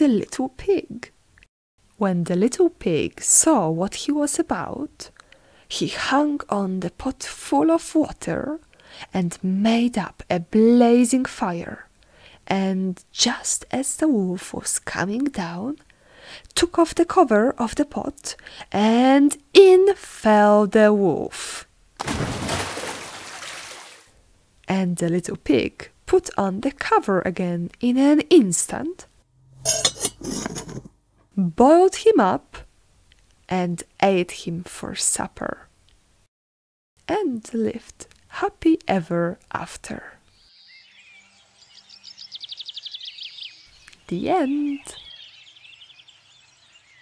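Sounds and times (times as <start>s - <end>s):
body splashing into water: 22.0s - 24.1s
songbirds chirping: 40.2s - 47.0s.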